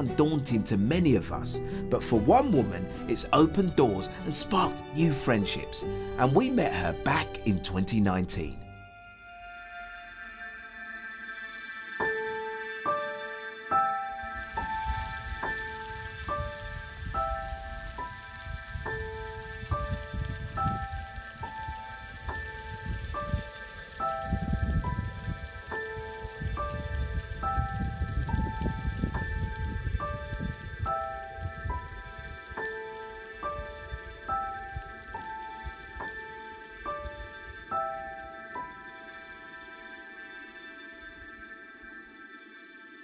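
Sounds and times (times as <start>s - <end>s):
low crackling rumble: 14.1s - 42.2s.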